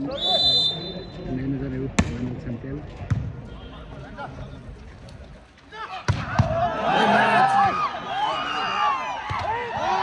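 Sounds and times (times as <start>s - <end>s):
people shouting: 5.7s - 10.0s.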